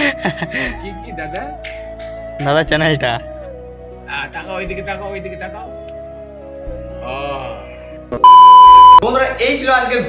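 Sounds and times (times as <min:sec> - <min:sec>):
quiet music: 0:00.0 - 0:10.0
high-pitched test-tone beep: 0:08.2 - 0:09.0.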